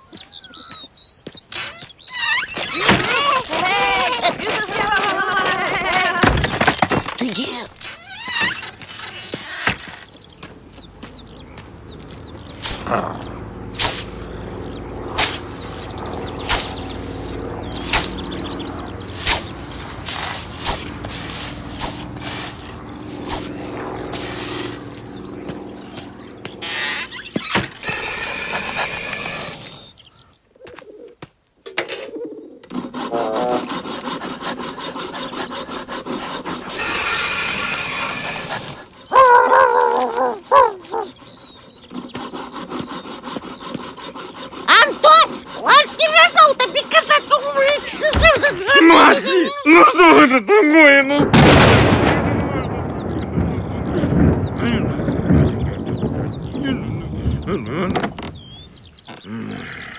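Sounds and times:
loud high wavering cries: 1.6 - 30.2, 33.0 - 59.4
quick high chatter: 2.1 - 9.3, 15.1 - 30.0, 32.8 - 41.4, 42.0 - 51.3
scythe swishing through grass: 13.8 - 14.2, 15.1 - 15.5, 16.4 - 16.9, 17.8 - 18.2, 19.1 - 25.0.

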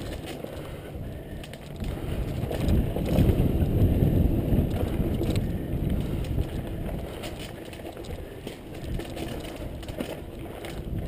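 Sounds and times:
bike rattling clicks: 0.0 - 11.0
tyres rumbling on dirt trail: 0.0 - 11.0
wind buffeting microphone: 0.0 - 11.0.

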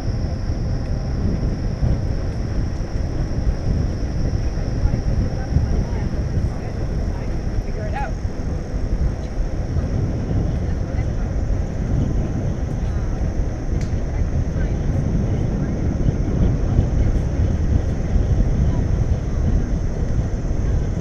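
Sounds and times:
wind rushing over microphone: 0.0 - 21.0.

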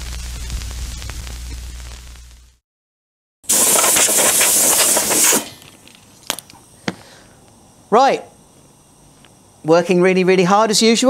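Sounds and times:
compressed air hissing: 3.5 - 5.8.

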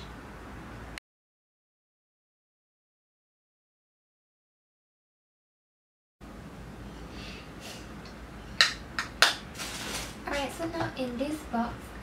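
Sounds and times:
short rustle: 9.6 - 10.2.

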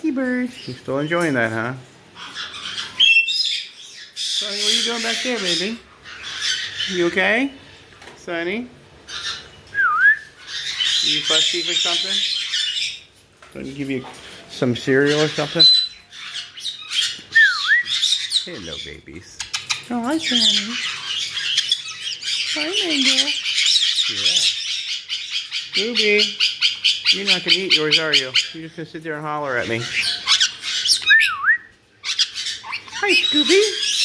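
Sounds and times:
faint bird chatter: 0.1 - 34.0
parrot squawking: 2.1 - 7.9, 9.0 - 13.2, 14.2 - 34.0.

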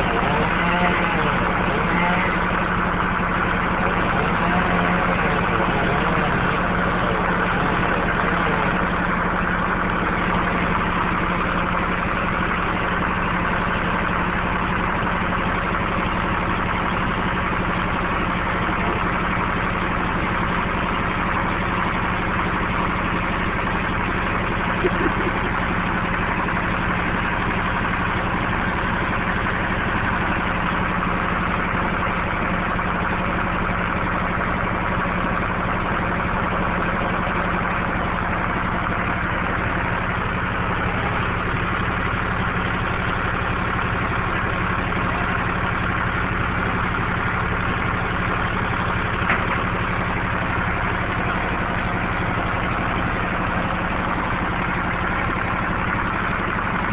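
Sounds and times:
engine idling: 0.0 - 56.9.

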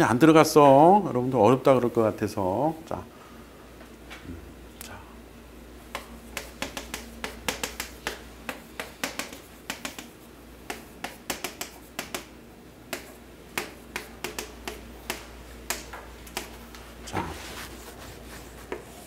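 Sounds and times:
chalk tapping and scratching on chalkboard: 5.9 - 12.3, 12.9 - 19.0.

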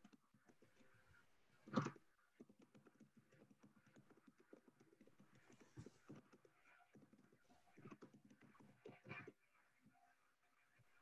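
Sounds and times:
faint irregular clicks and taps: 0.0 - 11.0.

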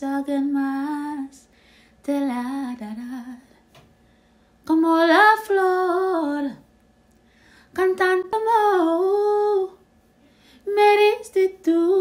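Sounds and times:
woman singing a cappella: 0.0 - 3.8, 4.6 - 6.7, 7.6 - 9.9, 10.6 - 12.0.

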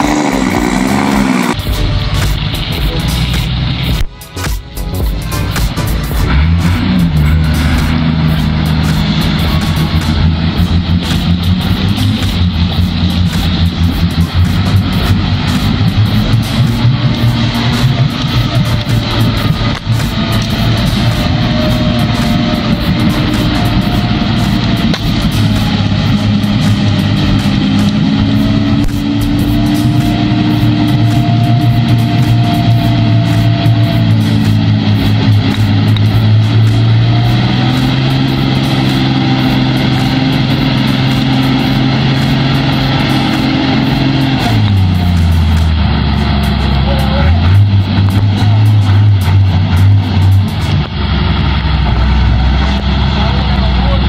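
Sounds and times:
diesel truck engine labouring: 0.0 - 54.0.

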